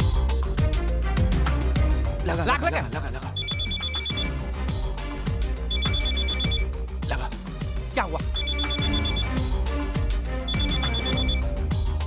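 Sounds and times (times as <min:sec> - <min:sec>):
film music: 0:00.0 - 0:12.0
mobile phone ringing: 0:03.4 - 0:04.4, 0:05.7 - 0:06.7, 0:08.3 - 0:09.4, 0:10.5 - 0:11.5.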